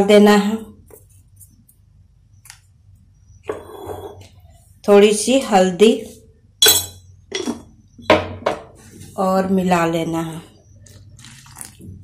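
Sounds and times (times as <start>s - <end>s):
utensils clinking against a bowl: 6.6s - 7.7s.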